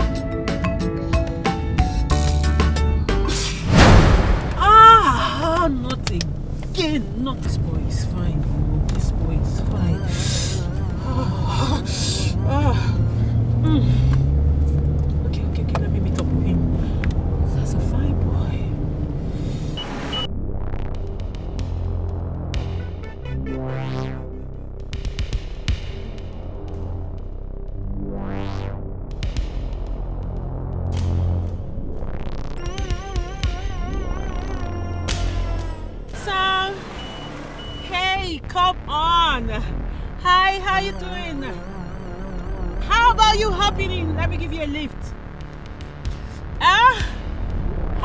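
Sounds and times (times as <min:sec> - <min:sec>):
background music: 0:00.0 - 0:14.6, 0:15.6 - 0:48.0
car interior rumble: 0:03.8 - 0:20.6, 0:31.6 - 0:48.0
woman speaking: 0:04.5 - 0:14.0, 0:36.1 - 0:36.9, 0:37.8 - 0:45.1, 0:46.6 - 0:47.2
low steady hum: 0:32.7 - 0:48.0
woman singing: 0:40.2 - 0:44.9.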